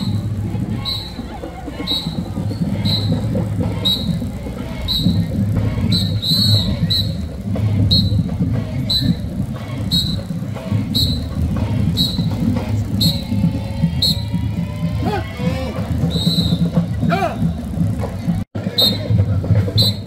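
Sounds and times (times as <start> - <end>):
whistle blasts: 0.0 - 14.5, 16.0 - 17.7, 18.6 - 20.0
low drumming: 0.0 - 20.0.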